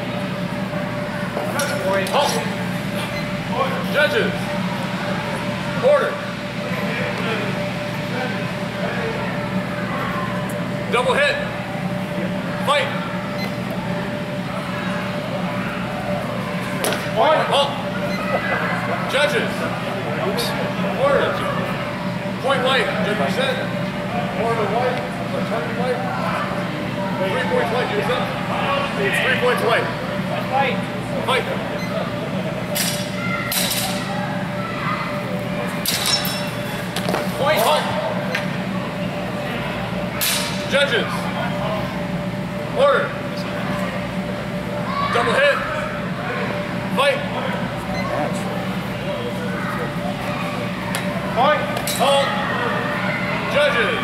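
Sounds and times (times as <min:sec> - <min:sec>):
faint voices: 0:00.0 - 0:54.0
large hall hum: 0:00.0 - 0:54.0.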